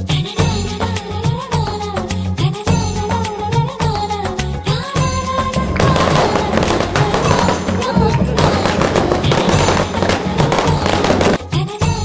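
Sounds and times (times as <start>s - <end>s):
music track: 4.4s - 12.0s
firework fountain crackling: 5.6s - 11.5s.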